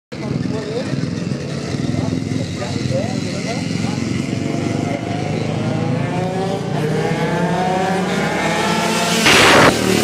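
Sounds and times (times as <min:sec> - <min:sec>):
voices: 0:00.1 - 0:08.4
kart engines revving: 0:00.1 - 0:10.0.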